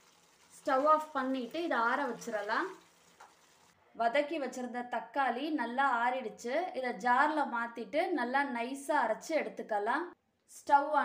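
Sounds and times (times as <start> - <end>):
woman speaking: 0.6 - 2.8, 4.0 - 11.0.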